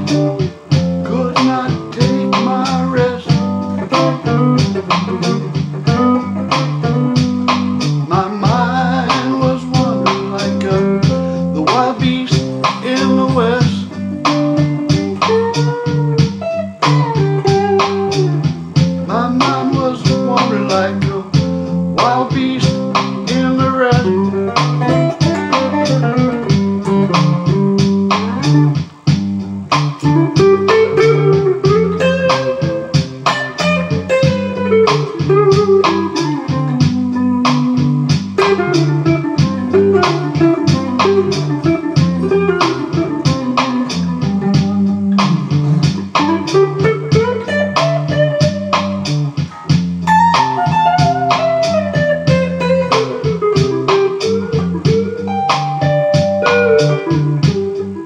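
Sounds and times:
bass and beat backing: 0.0 - 58.0
electric guitar lead line: 0.0 - 58.0.

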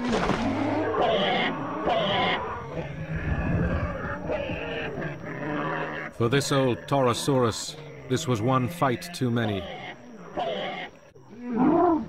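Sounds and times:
harsh dinosaur calls: 0.4 - 12.0.

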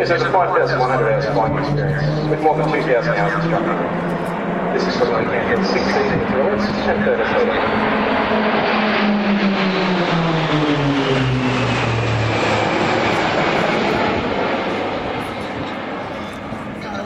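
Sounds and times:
propeller aircraft flying overhead: 0.0 - 17.0.

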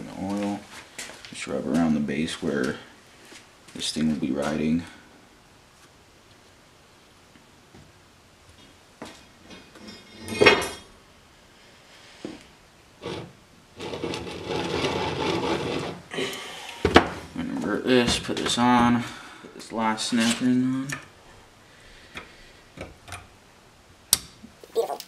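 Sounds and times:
rubbing and scraping: 13.0 - 16.1.

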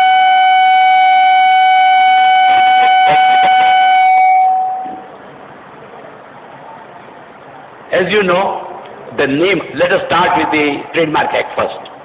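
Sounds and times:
microphone feedback ringing: 0.0 - 5.1.

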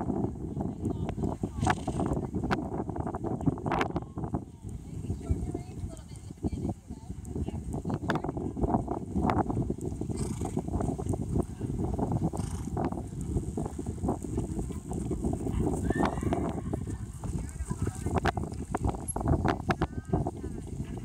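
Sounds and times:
wind rumble on microphone: 0.0 - 21.0
hoofbeats on turf: 5.2 - 21.0.

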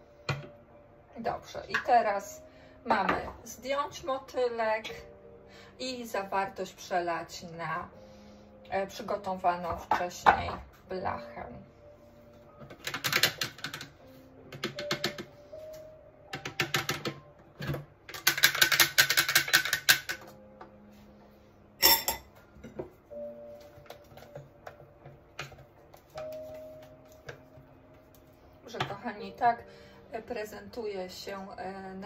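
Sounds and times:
soft background music: 0.0 - 32.0.

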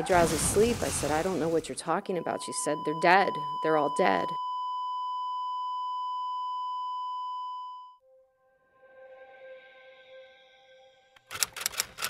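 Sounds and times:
continuous electronic beep: 1.9 - 8.0.

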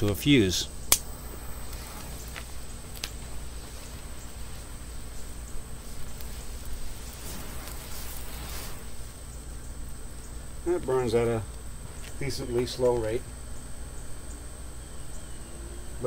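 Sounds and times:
fuse burning with hiss: 0.0 - 16.0
fuse crackling: 0.0 - 16.0.

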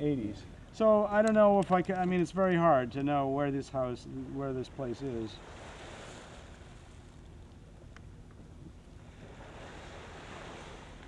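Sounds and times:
waves on the shore: 3.8 - 7.3, 9.0 - 11.0.

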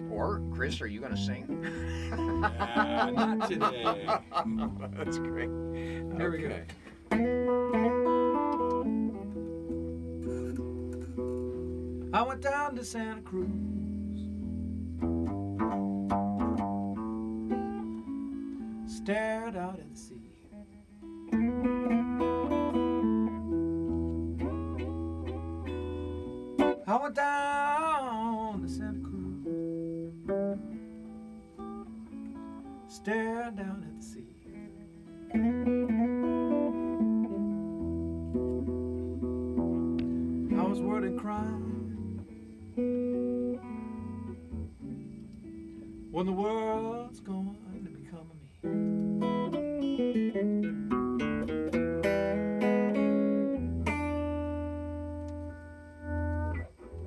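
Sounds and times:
blues electric guitar: 0.0 - 57.0.

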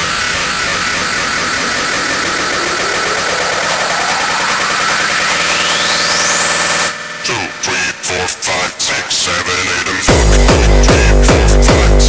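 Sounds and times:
rising pitch sweep: 0.0 - 8.3
distorted noise wash: 0.0 - 12.0.

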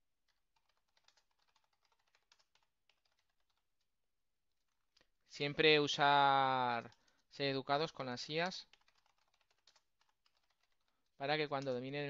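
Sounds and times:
computer keyboard typing: 0.2 - 3.9, 4.6 - 5.2, 6.5 - 12.0.

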